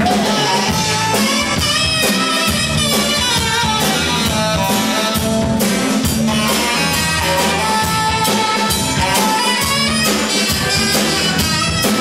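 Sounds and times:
drum kit beat: 0:00.0 - 0:12.0
electric guitars: 0:00.0 - 0:12.0.

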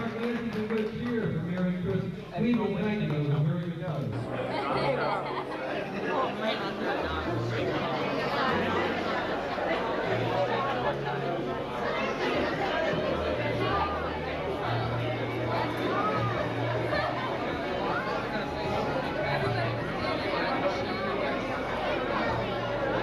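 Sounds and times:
many guests talking: 0:00.0 - 0:23.0.

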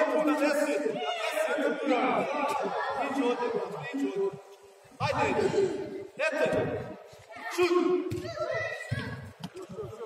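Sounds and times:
excited yells in a large hall: 0:00.0 - 0:04.3, 0:07.2 - 0:09.4.

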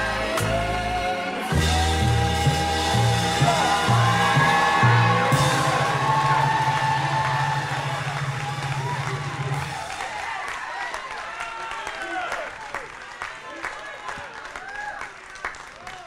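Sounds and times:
congregation singing and calling out: 0:00.0 - 0:08.2
keyboard chords: 0:00.0 - 0:09.8.

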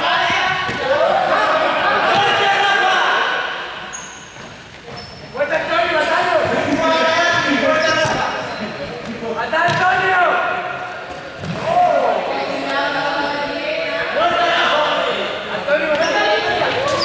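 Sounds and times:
players shouting in echoing hall: 0:00.0 - 0:17.0.

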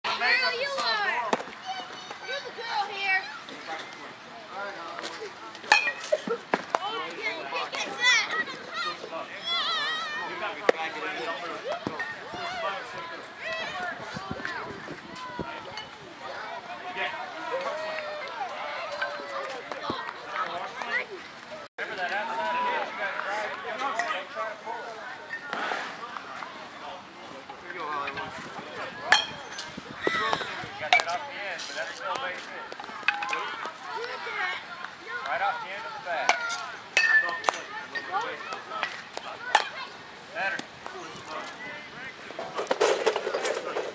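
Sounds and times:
faint voices: 0:00.0 - 0:43.9.

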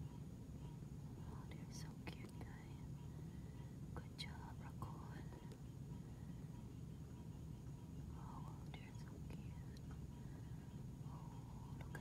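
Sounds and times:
quiet whispering: 0:00.0 - 0:12.0
steady low hum: 0:00.0 - 0:12.0.

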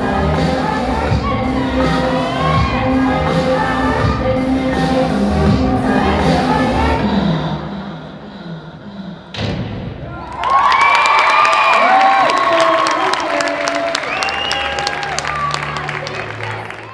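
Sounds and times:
music: 0:00.0 - 0:08.4, 0:13.4 - 0:16.9
loud thump: 0:09.3 - 0:10.1
audience cheering and clapping: 0:10.0 - 0:16.9
high shouts and whoops: 0:10.1 - 0:15.9.

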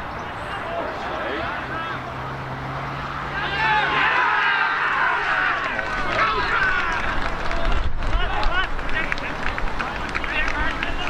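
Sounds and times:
players shouting and cheering: 0:00.0 - 0:11.0
wind gusts on microphone: 0:06.0 - 0:11.0.

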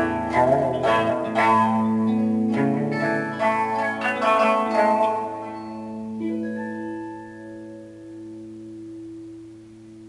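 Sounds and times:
plucked shamisen strings ringing: 0:00.0 - 0:08.8.

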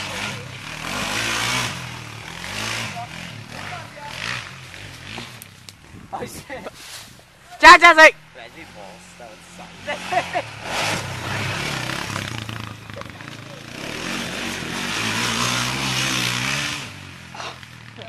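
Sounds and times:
quad engine revving: 0:00.0 - 0:06.4, 0:08.6 - 0:18.0.

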